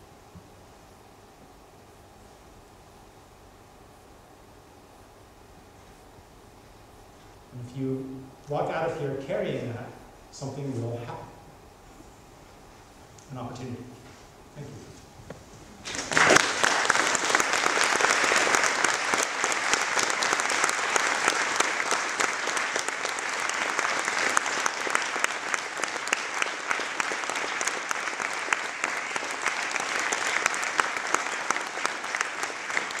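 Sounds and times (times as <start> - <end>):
audience applauding: 15.8 - 33.0.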